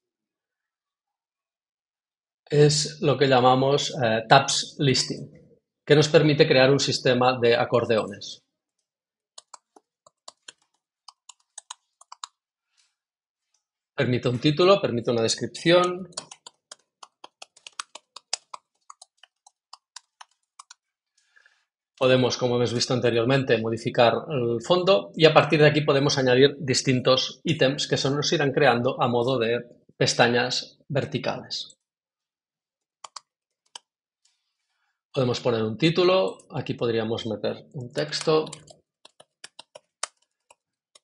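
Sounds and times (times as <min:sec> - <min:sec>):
computer keyboard keystrokes: 0:09.4 - 0:12.3, 0:16.1 - 0:20.5, 0:38.0 - 0:41.0.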